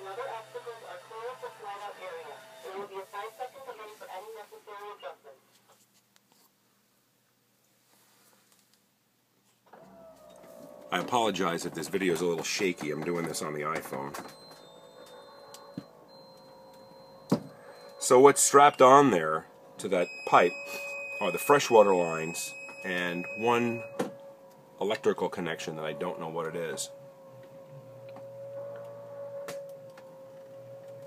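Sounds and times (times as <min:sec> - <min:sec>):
faint steady hum: 0:09.0 - 0:31.0.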